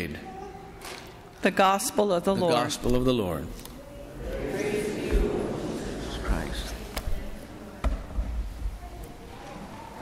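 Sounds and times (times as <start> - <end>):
low voices: 3.7 - 7.8
movement noise: 4.1 - 7.6.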